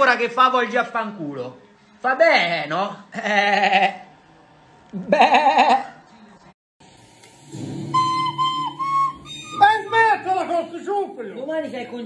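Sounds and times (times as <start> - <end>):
recorder playing held notes: 7.9 - 10.2.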